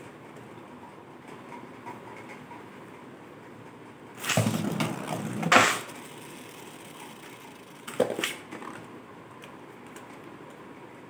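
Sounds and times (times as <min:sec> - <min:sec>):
spinning top whirring: 0:04.2 - 0:08.8.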